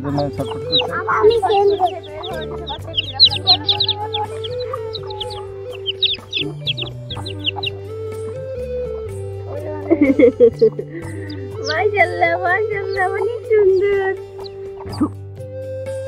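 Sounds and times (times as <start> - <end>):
chicks peeping: 0.0 - 8.8, 9.5 - 15.2
background music with low notes: 0.0 - 16.0.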